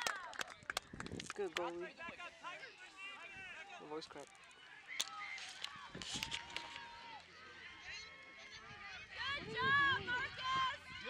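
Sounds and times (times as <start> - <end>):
distant children and spectators: 0.0 - 11.0.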